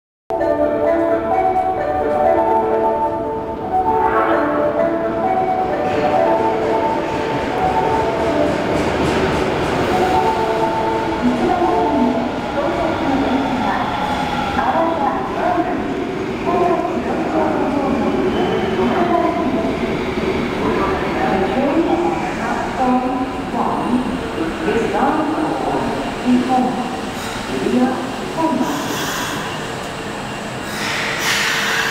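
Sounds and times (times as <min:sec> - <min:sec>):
subway train running: 0:00.3 - 0:31.9
chime melody: 0:00.4 - 0:08.2.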